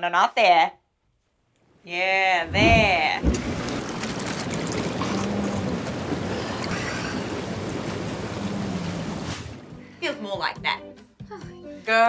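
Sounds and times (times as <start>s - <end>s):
hot tub jets churning water: 2.5s - 9.8s.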